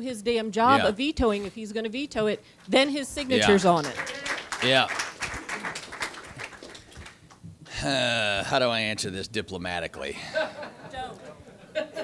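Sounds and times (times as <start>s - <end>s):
audience clapping: 3.2s - 7.4s.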